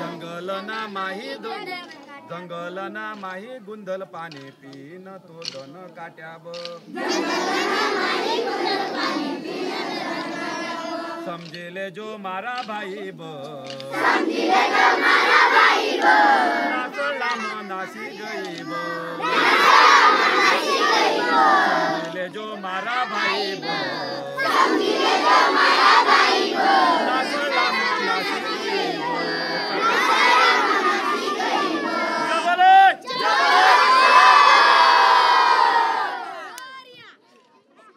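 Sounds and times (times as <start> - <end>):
children shouting together: 7.0 - 11.2, 14.1 - 22.1, 23.2 - 32.4, 33.0 - 37.2.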